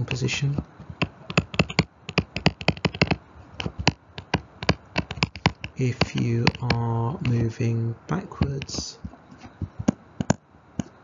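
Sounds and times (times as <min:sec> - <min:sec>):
stylus clicking on tablet screen: 0:00.0 - 0:07.5, 0:08.4 - 0:10.9.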